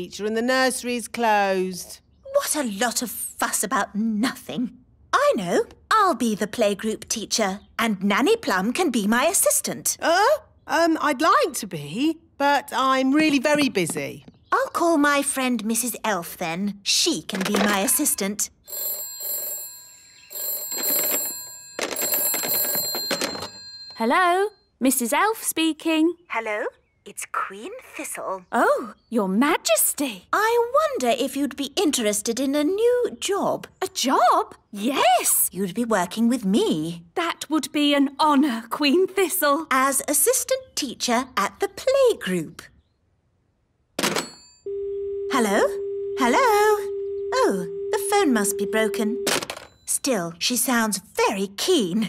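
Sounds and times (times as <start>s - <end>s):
telephone ringing: 17.4s - 24.1s, 44.0s - 50.2s.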